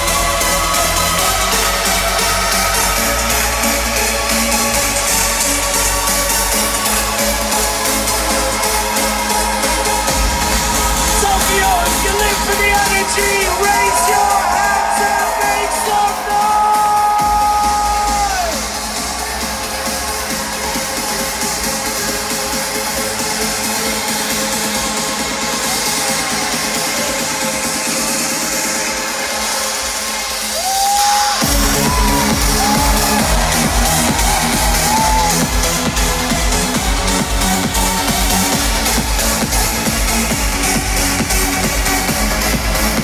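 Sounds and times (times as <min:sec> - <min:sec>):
electronic dance music: 0:00.0 - 0:43.0.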